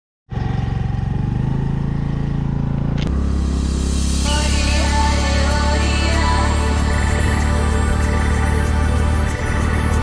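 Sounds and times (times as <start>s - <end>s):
scooter engine running: 0.3s - 10.0s
background music: 3.2s - 10.0s.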